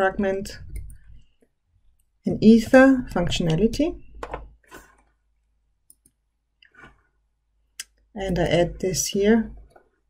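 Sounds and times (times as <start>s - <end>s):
computer mouse clicks: 5.8s - 6.8s.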